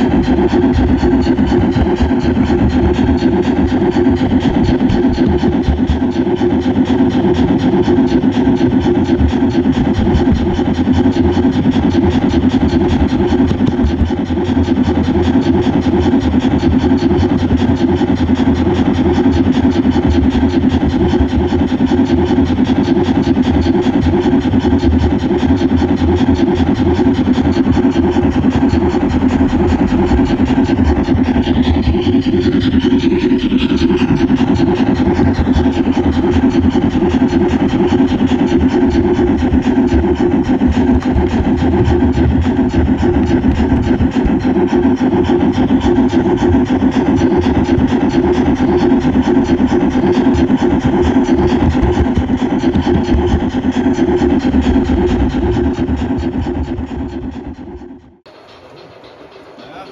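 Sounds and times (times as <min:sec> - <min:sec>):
model train running on track: 0:00.0 - 0:59.9.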